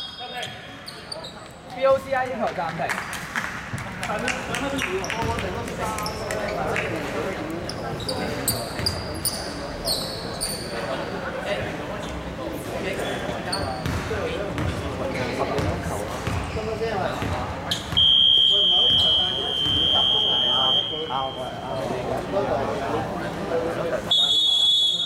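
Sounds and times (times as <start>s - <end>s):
chatter of people in hall: 0.0s - 25.0s.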